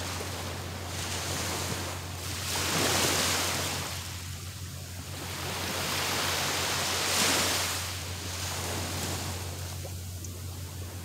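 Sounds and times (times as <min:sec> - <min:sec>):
small waves washing up beach: 0:00.0 - 0:11.0.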